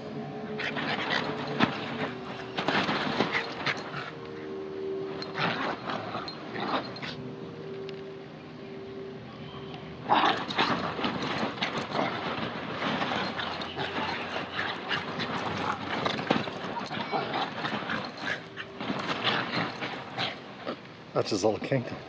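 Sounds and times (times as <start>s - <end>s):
dogs scuffling: 0.5s - 4.4s, 5.1s - 7.2s, 10.0s - 22.0s
dogs vocalizing: 0.6s - 4.2s, 10.1s - 20.8s
bean bag cover rustling: 10.1s - 20.8s.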